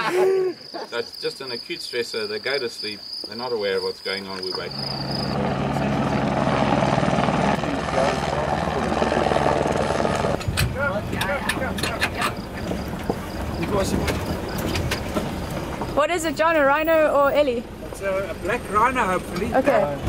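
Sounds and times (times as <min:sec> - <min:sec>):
helicopter rotor chop and whine: 0:04.6 - 0:15.5.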